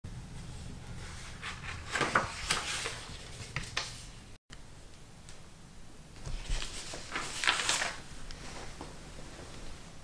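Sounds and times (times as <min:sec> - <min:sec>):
book pages rustling: 0:01.0 - 0:04.2, 0:06.2 - 0:08.9.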